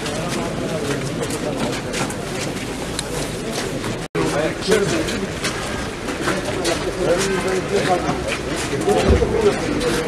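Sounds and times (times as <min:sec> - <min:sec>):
crowd of men talking: 0:00.0 - 0:10.0.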